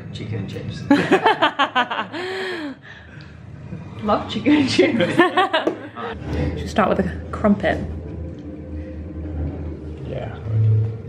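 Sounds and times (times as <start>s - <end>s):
low hum: 0.0s - 11.0s
faint sustained tones: 6.0s - 11.0s.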